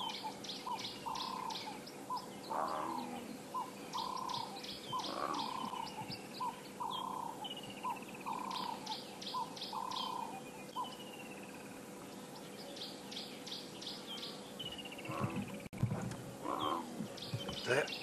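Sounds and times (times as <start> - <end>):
low rough bird calls: 0.0 - 18.0.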